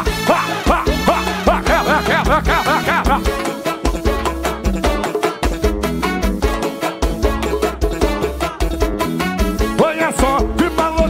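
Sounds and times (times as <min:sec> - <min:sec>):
live band music with driving beat: 0:00.0 - 0:11.0
swooping pitched notes: 0:00.2 - 0:03.7.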